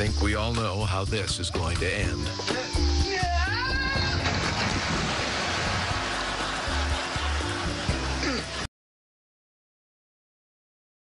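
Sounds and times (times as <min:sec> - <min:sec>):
background music: 0:00.0 - 0:08.7
water splashing and churning: 0:04.1 - 0:06.6.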